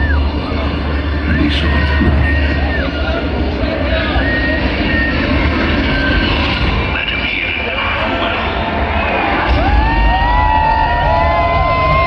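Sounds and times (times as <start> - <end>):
heavy bass: 0.0 - 7.8, 8.7 - 12.0.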